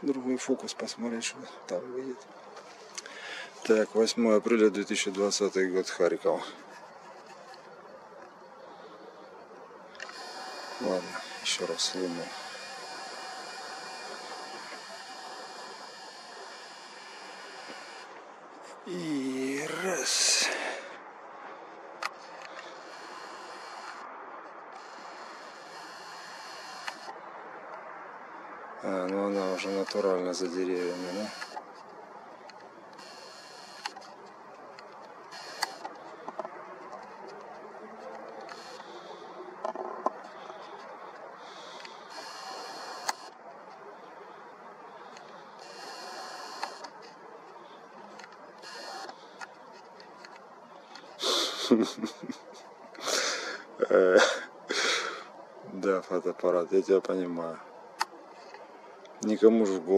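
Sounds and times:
steady low hiss: 0:00.0 - 0:59.9
camera lens motor whirring: 0:10.0 - 0:18.2, 0:24.8 - 0:27.1, 0:30.9 - 0:31.6, 0:33.0 - 0:34.0, 0:35.3 - 0:35.9, 0:42.1 - 0:43.3, 0:45.6 - 0:46.9, 0:48.6 - 0:49.2
sharp camera clicks: 0:26.7 - 0:27.1, 0:35.3 - 0:36.0, 0:42.1 - 0:43.3.

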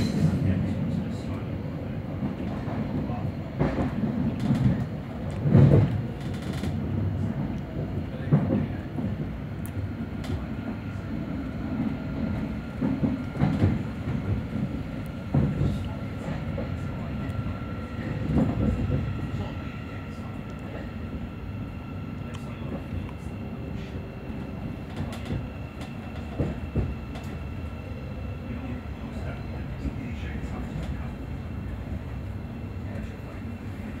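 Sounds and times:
train running rumble: 0:00.0 - 0:34.0.

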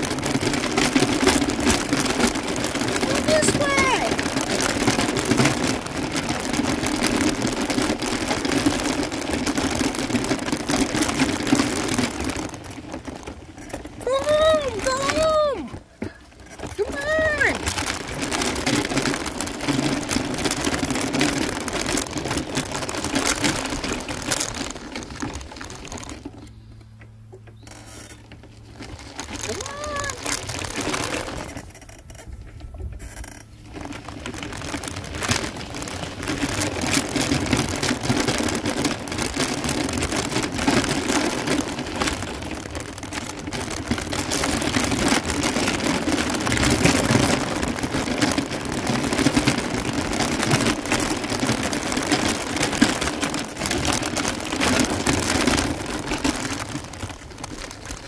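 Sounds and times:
tyres crunching over gravel: 0:00.0 - 0:58.0
vehicle motor hum: 0:15.4 - 0:58.0.

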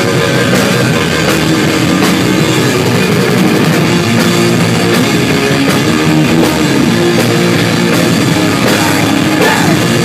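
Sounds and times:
drum and cymbal hits: 0:00.0 - 0:10.0
electric guitars: 0:00.0 - 0:10.0
punk rock band playing: 0:00.0 - 0:10.0.

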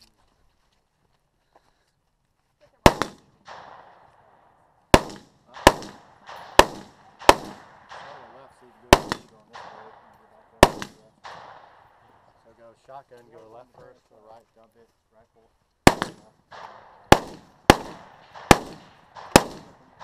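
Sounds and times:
gunshots with rolling echo: 0:02.8 - 0:12.7, 0:15.8 - 0:20.0.

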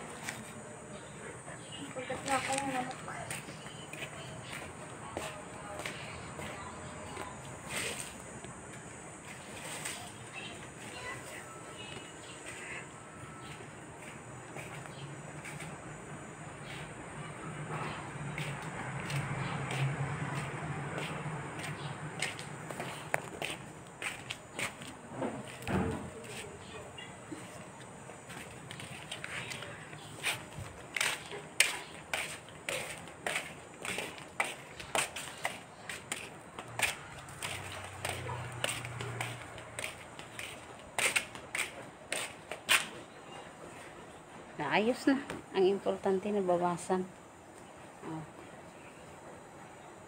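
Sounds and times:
footsteps on pavement: 0:00.0 - 0:15.9, 0:17.8 - 0:43.1.

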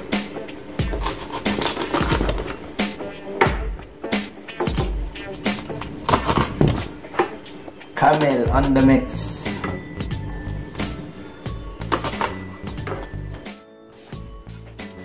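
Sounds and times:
background music: 0:00.0 - 0:15.0
knife chopping on cutting board: 0:00.8 - 0:02.5, 0:05.5 - 0:07.4.

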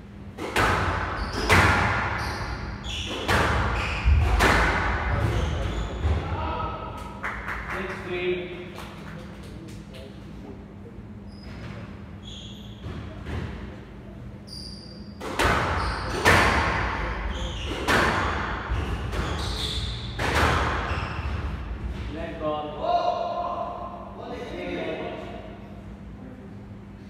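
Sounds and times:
squash ball hitting rackets and walls: 0:00.3 - 0:06.6, 0:12.8 - 0:13.7, 0:15.2 - 0:22.2.

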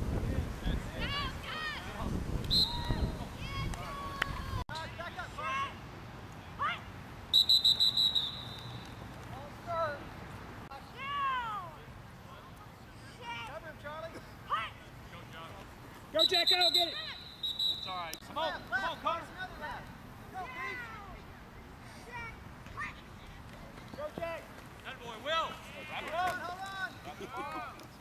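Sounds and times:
referee's whistle blast: 0:02.5 - 0:03.0, 0:07.3 - 0:08.9, 0:16.2 - 0:18.1.

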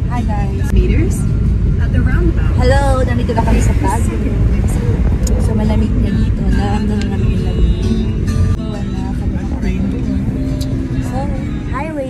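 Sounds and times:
woman talking: 0:00.0 - 0:08.0, 0:11.0 - 0:12.0
car cabin road noise: 0:00.0 - 0:12.0.

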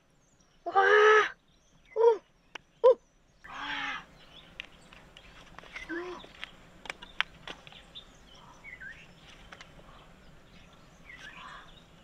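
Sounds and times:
harsh caw-like animal calls: 0:03.5 - 0:04.1.

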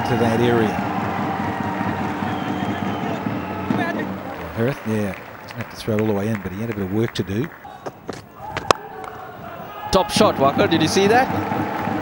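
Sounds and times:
stadium ambience rushing noise: 0:00.0 - 0:12.0.

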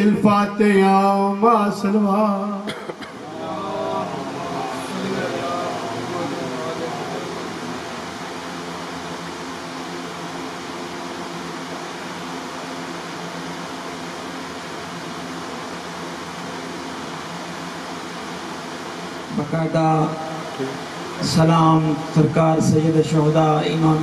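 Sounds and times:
steady background hiss: 0:00.0 - 0:24.0.

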